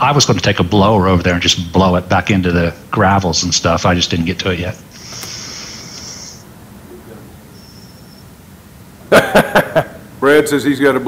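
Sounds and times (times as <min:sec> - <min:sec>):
loud laughter: 0:09.1 - 0:10.0.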